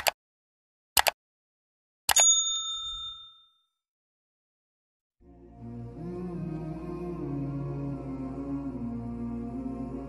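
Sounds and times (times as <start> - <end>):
quick clicks: 1.0 - 1.2
bright bell ding: 2.1 - 3.6.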